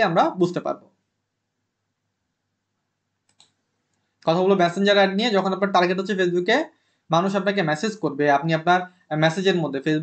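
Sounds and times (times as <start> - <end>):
man talking: 0.0 - 0.8, 4.3 - 10.0
faint computer clicks: 3.2 - 4.3.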